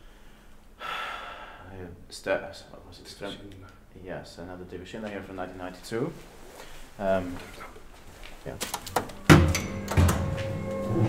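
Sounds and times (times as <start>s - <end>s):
person breathing in: 0.0s - 1.7s.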